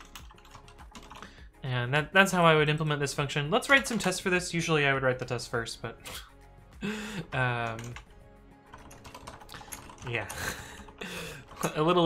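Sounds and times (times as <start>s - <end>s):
computer keyboard typing: 0.0s - 1.3s, 3.6s - 4.2s, 7.4s - 12.0s.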